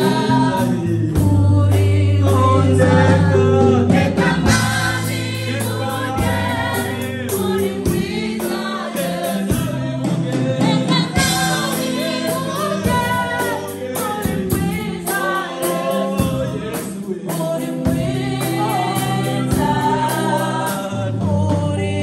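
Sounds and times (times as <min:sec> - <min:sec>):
group of singers: 0:00.0 - 0:22.0.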